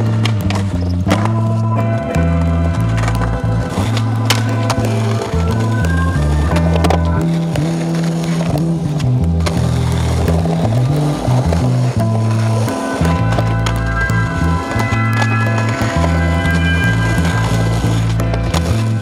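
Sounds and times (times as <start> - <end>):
music with heavy bass line: 0.0 - 19.0
skateboard popping and landing: 0.0 - 19.0
skateboard wheels rolling on pavement: 0.0 - 19.0.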